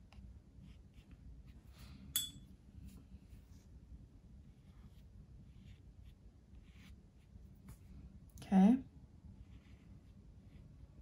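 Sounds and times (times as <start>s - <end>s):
paintbrush clinking on container: 2.1s - 2.5s.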